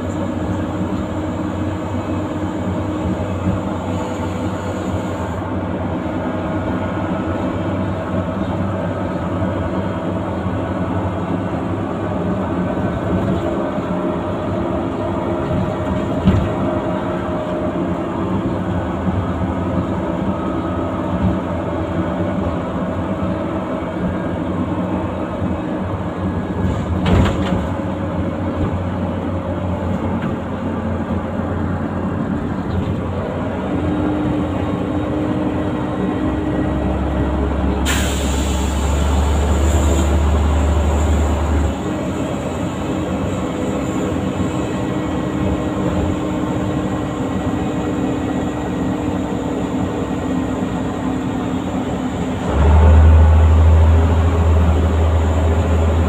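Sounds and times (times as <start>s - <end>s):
bus diesel engine running: 0.0s - 56.0s.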